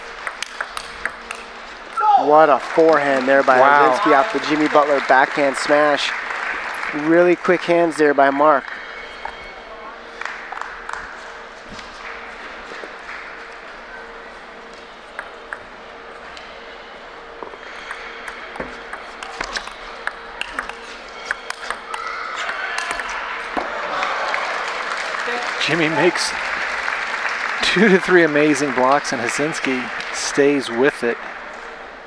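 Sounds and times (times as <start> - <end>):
spectators applauding: 0.0 - 14.7, 17.6 - 32.0
table tennis ball clicking: 0.2 - 1.5, 17.8 - 23.2.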